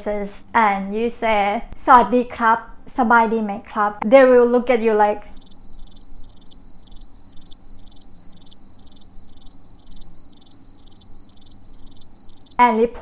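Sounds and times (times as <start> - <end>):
crickets chirping: 5.3 - 12.8.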